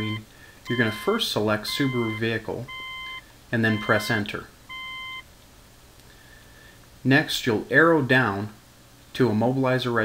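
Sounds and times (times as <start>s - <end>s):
short electronic beep: 1.7s - 3.2s, 3.8s - 5.3s.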